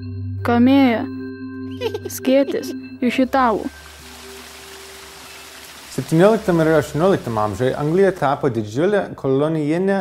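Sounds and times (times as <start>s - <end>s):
falling rain hiss: 3.5s - 8.7s.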